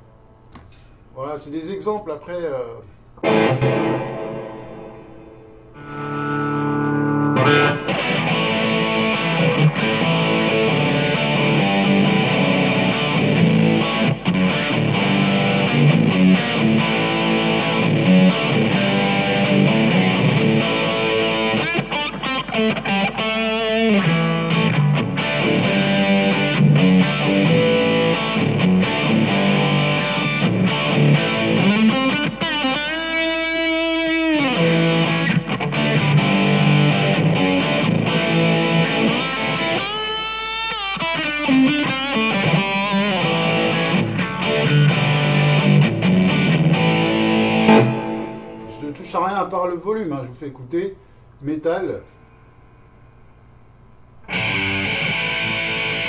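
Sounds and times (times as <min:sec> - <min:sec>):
distorted electric guitar: 0:03.2 - 0:49.4, 0:54.2 - 0:56.0.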